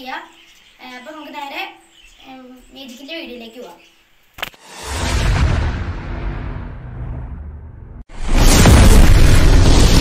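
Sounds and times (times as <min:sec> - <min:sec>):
explosion boom: 0:04.6 - 0:10.0.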